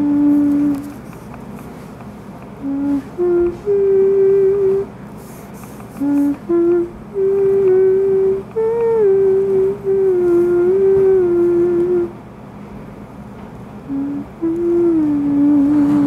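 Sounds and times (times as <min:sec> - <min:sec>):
person humming: 0:00.0 - 0:01.1, 0:02.6 - 0:04.9, 0:05.8 - 0:12.2, 0:13.9 - 0:16.0.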